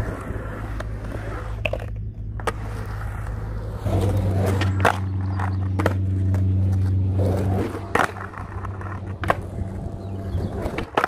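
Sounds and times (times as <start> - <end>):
skateboard wheels rolling on concrete: 0.0 - 11.0.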